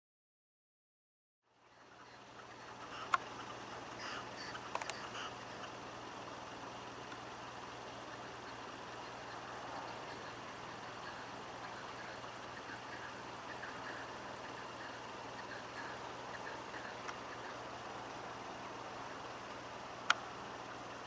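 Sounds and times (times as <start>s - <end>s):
distant engine rumble: 1.5s - 21.0s
low hum: 1.5s - 21.0s.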